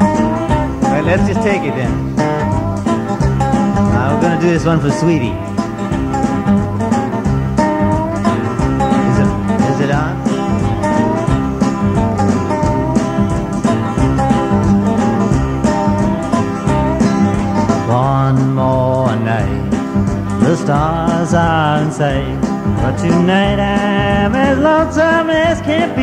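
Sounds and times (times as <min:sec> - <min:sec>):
gliding lead melody: 0:00.0 - 0:18.0
country band playing: 0:00.0 - 0:26.0
person singing: 0:09.0 - 0:11.3, 0:17.8 - 0:19.8, 0:20.4 - 0:26.0.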